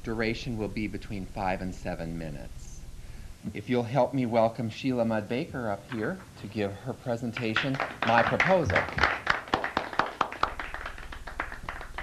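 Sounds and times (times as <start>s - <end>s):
people clapping: 7.3s - 12.0s.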